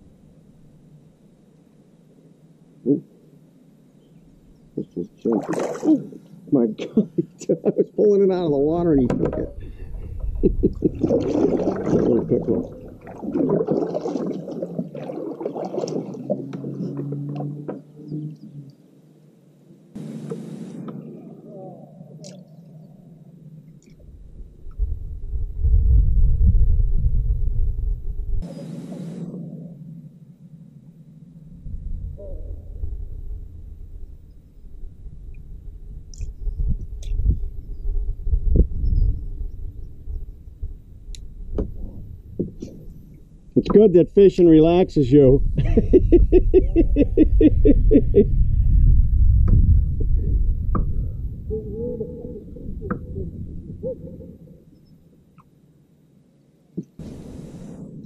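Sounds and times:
low rumbling: 0.0s - 56.1s
kayak paddle splashing water: 5.2s - 6.2s, 9.8s - 17.8s
short hisses: 28.4s - 29.4s, 57.0s - 58.0s.

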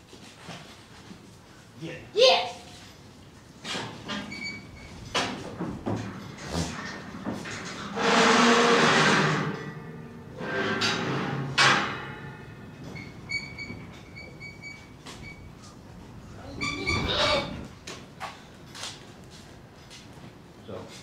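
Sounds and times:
metal rattling and scraping: 3.7s - 14.5s
sharp metal clank: 7.9s - 12.8s.

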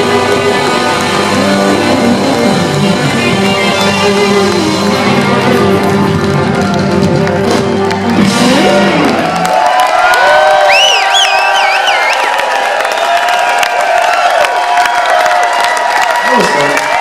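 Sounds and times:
blues band playing: 0.0s - 10.0s
electric guitars sustained notes: 0.0s - 10.0s
crowd cheering: 0.0s - 17.0s.

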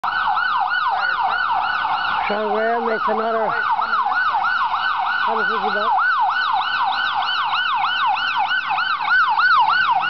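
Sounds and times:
emergency siren yelping: 0.0s - 10.0s.

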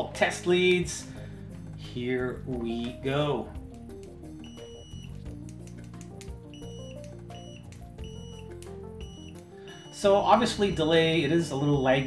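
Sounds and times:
background music: 0.0s - 12.0s
multimeter continuity beeps: 4.4s - 10.9s.

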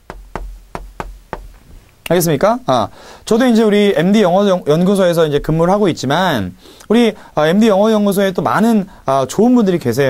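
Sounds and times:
chalk tapping on a chalkboard: 0.0s - 1.8s.

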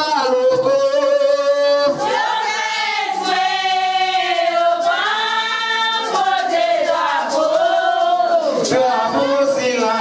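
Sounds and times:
group singing in long held notes: 1.6s - 10.0s.

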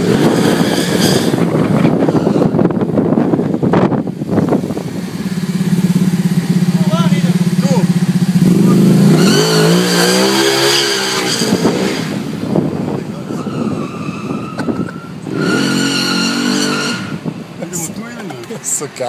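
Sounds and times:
motorcycle engine revving: 0.0s - 18.0s.

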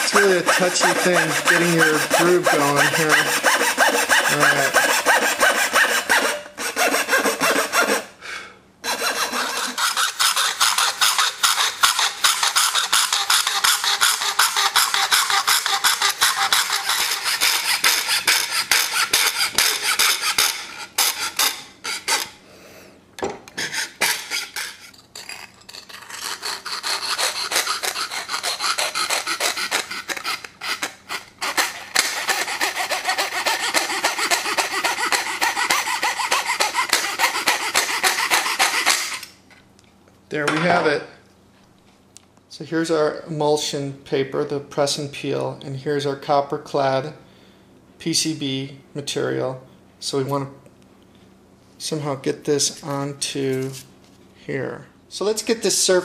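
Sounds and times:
fine saw cutting circuit board: 0.0s - 8.0s, 26.0s - 39.3s.

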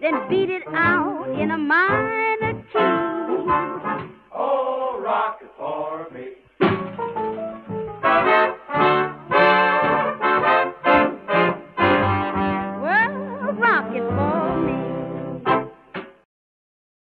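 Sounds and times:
swing band with horns: 0.0s - 4.2s, 6.6s - 15.7s.

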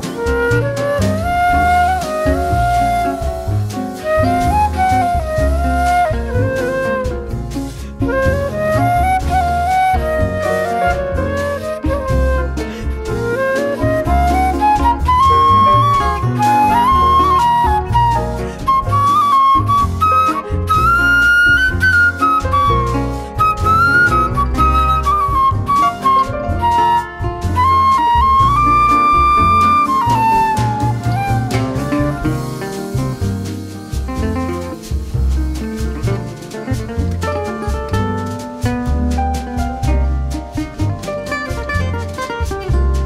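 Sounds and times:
flute playing melody: 0.0s - 35.2s, 37.0s - 43.0s
guitar: 0.0s - 43.0s
jazz band accompaniment: 0.0s - 43.0s
piano: 0.0s - 43.0s
upright bass: 0.0s - 43.0s.

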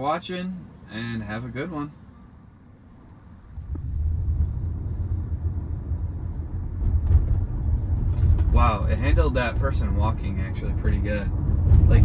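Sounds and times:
car cabin road rumble: 1.2s - 12.0s.

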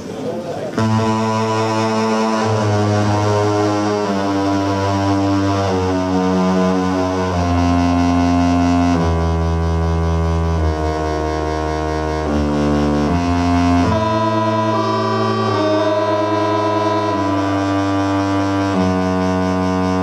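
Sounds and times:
deep bass: 0.8s - 20.0s
synthesizer chords: 0.8s - 20.0s.

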